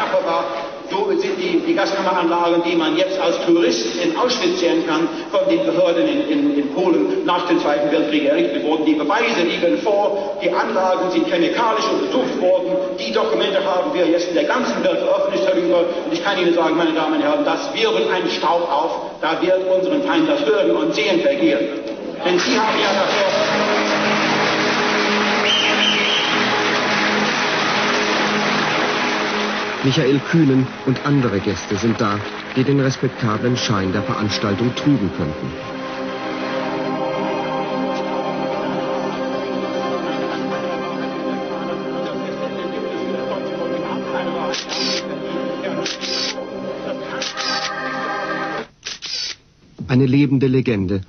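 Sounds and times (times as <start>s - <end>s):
man narrating: 0.0s - 23.8s, 29.8s - 35.8s, 49.8s - 51.0s
large audience applauding: 22.3s - 37.9s
background music with held chords: 22.4s - 48.7s.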